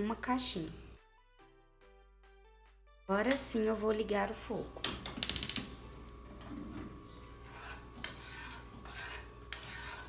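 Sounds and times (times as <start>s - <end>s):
spoon scraping a saucepan: 6.6s - 10.0s.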